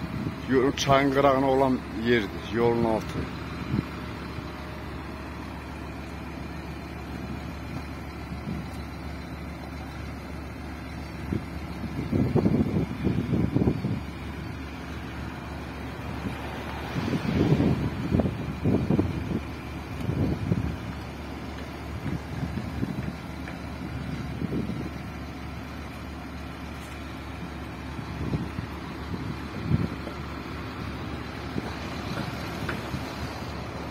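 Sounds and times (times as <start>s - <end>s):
heavy diesel machinery running: 0.0s - 33.9s
low engine surges: 0.0s - 33.9s.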